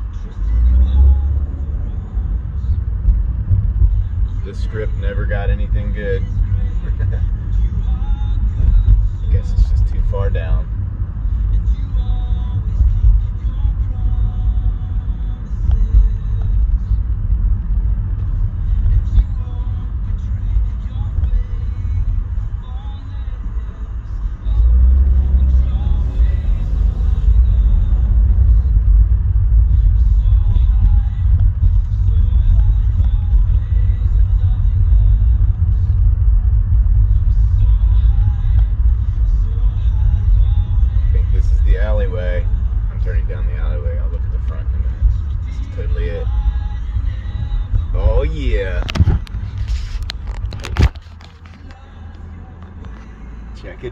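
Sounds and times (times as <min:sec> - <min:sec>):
car interior road noise: 0:00.0 - 0:53.9.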